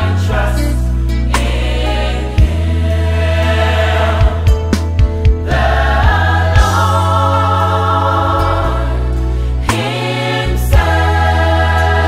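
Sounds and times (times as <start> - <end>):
band with bass and keyboard: 0.0 - 12.0
choir singing: 0.0 - 12.0.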